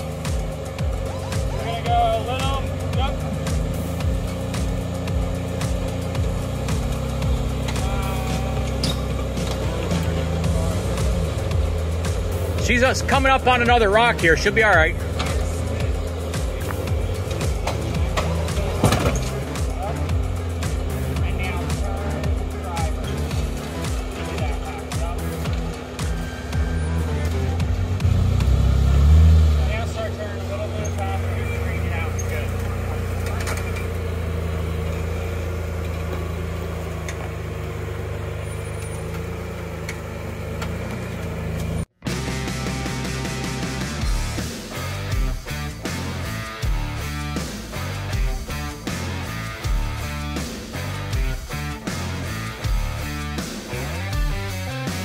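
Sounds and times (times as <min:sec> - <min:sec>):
engine running at low revs: 0:00.0 - 0:55.0.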